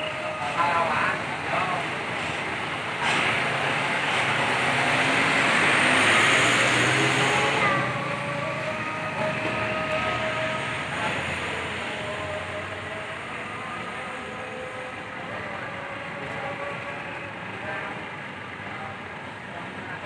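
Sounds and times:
bus driving past: 0.0 - 20.0.

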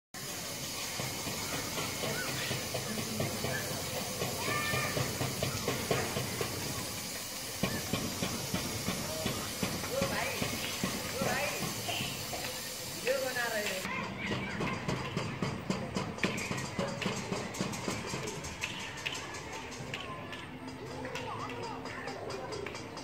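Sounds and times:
steady hiss: 0.2 - 13.9
distant voices: 0.2 - 23.0.

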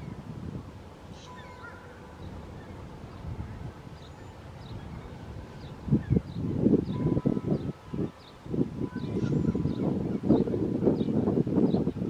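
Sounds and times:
faint steady tone: 0.0 - 12.0
wind rumble on microphone: 0.0 - 12.0
small bird chirping: 1.2 - 12.0.

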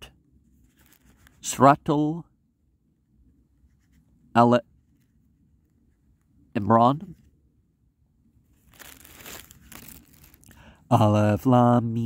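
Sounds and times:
crackly rustling: 0.4 - 1.5, 8.3 - 10.8.

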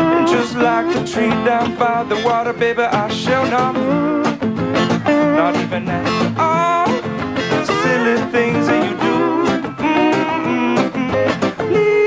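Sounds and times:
acoustic guitar strumming: 0.0 - 12.0
lap slide guitar melody: 0.0 - 12.0.

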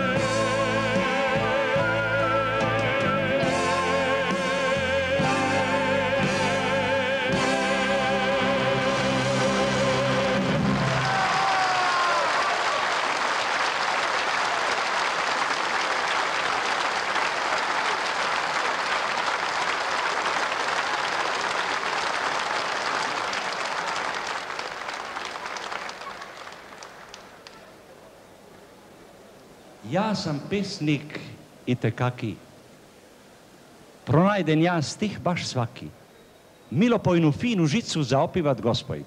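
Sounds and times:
music: 0.0 - 11.2
audience applauding: 10.1 - 27.9.

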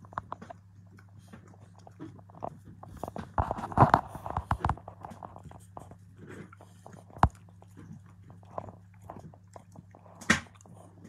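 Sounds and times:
dog crunching treats: 0.0 - 11.0.

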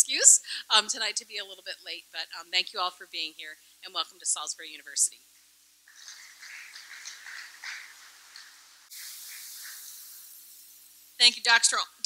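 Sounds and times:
audience applauding: 5.9 - 9.8.

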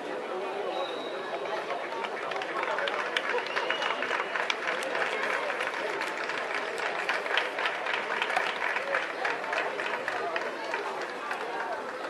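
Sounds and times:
indistinct chattering voices: 0.0 - 12.0.

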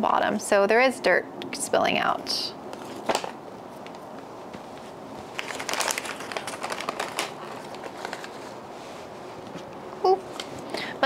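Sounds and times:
packing paper rustling and crinkling: 2.8 - 9.6.

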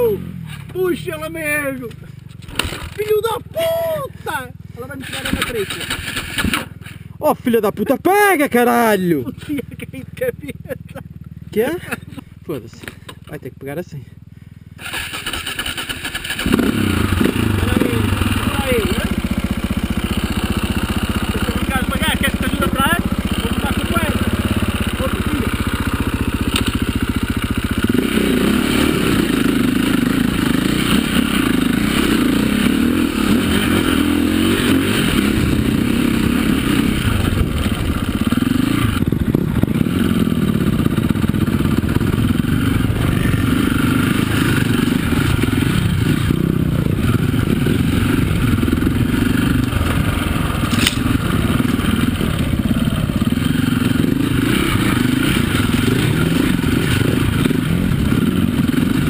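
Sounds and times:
dirt bike engine revving: 0.0 - 7.0, 14.8 - 59.0
stones clattering under tyres: 50.6 - 51.8.

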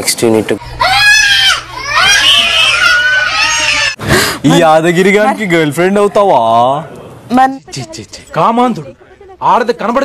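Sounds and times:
small child screaming and wailing: 0.8 - 4.0.

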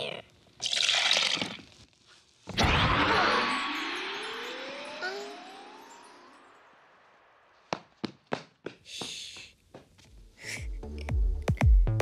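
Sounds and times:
cartoon boom: 2.5 - 5.9
rising whistle: 2.6 - 6.7.

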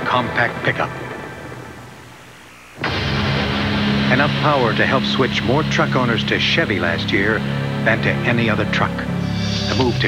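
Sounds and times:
steady low drone: 2.8 - 10.0.

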